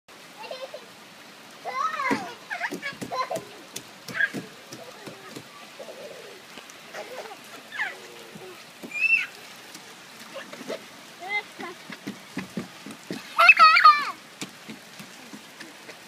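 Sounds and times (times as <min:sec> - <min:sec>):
toddler babbling and squealing: 0:01.6 - 0:03.4, 0:04.1 - 0:09.4, 0:13.4 - 0:14.2.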